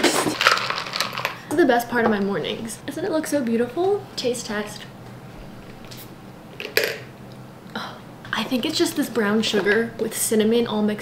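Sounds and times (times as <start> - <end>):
ice cubes clinking in glass: 0.0 - 1.4.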